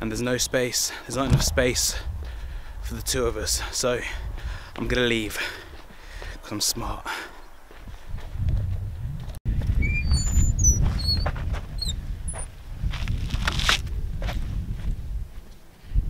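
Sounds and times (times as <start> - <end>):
wind buffeting microphone: 1.1 - 6.5, 7.4 - 16.0
small birds chirping: 5.8 - 7.9, 9.8 - 12.4.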